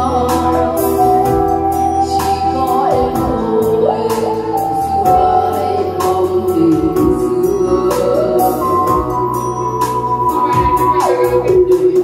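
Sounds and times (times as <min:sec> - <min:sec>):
electronic keyboard: 0:00.0 - 0:12.0
woman singing into microphone: 0:00.0 - 0:12.0.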